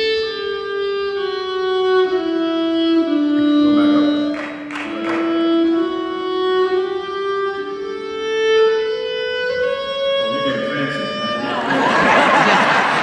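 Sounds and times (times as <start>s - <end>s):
bowed violin long notes: 0.0s - 13.0s.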